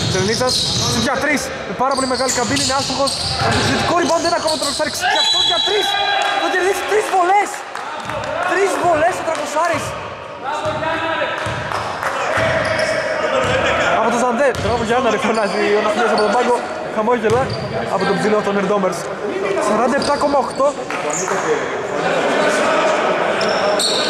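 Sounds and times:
players calling out: 1.9 - 16.6.

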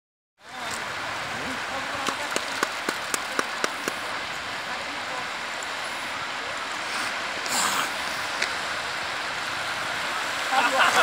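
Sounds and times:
surf: 0.4 - 11.0
wind on a beach: 0.4 - 11.0.

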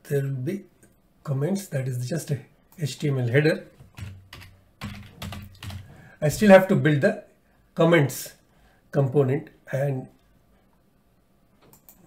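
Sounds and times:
keyboard typing: 3.8 - 6.0.

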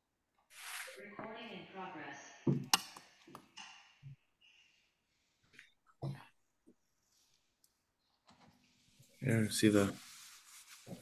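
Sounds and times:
person speaking: 9.2 - 11.0.

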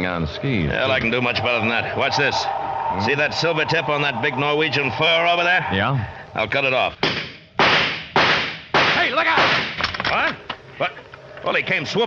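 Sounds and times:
rifle shots: 7.0 - 9.8.

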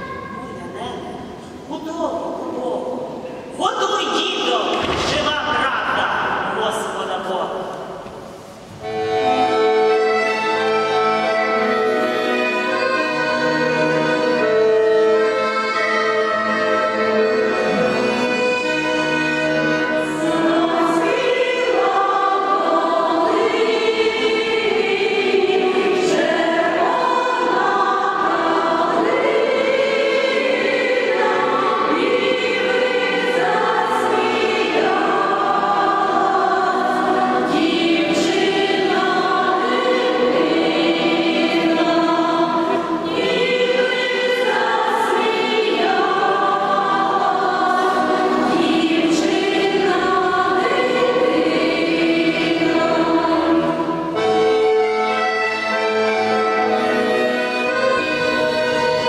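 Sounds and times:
women's choir singing: 8.2 - 59.0
accordion: 8.8 - 59.0.

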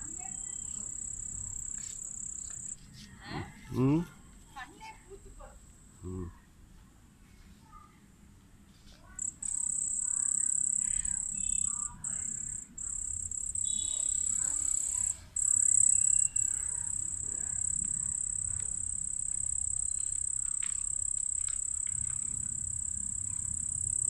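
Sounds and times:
cricket trilling: 0.0 - 2.8, 9.2 - 24.0.

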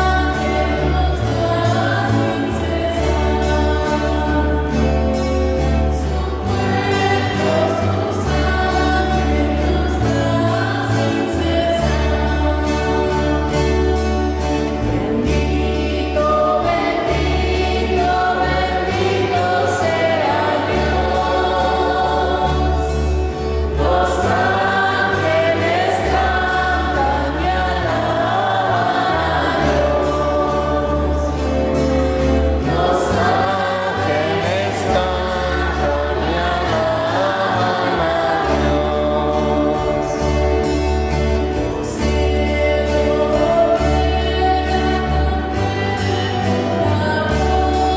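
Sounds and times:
church choir singing: 0.0 - 47.9.

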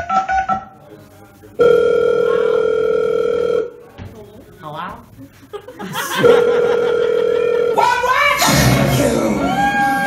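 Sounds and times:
telephone ring tone: 1.6 - 3.8, 6.2 - 8.1.

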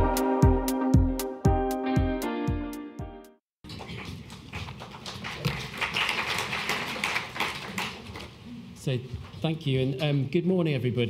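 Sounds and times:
audience applauding: 5.0 - 8.1.

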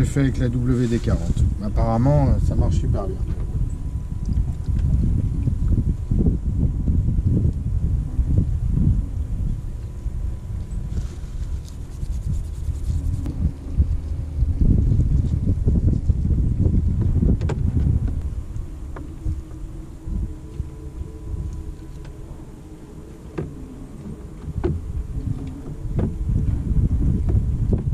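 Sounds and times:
wind buffeting microphone: 0.0 - 27.9.

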